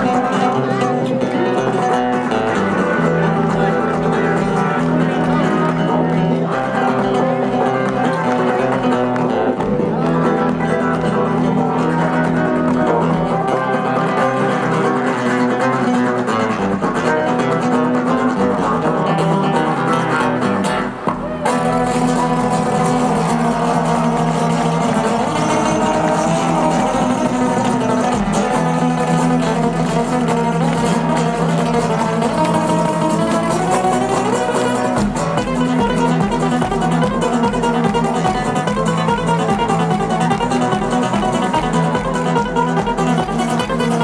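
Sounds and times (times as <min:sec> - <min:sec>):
acoustic guitar duet: 0:00.0 - 0:44.0.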